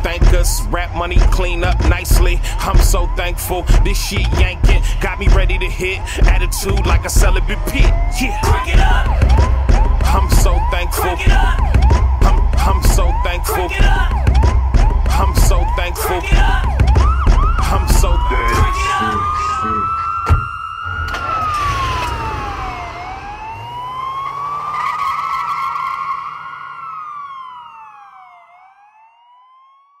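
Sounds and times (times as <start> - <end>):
hip-hop beat: 0.0 - 20.5
siren wailing: 0.0 - 30.0.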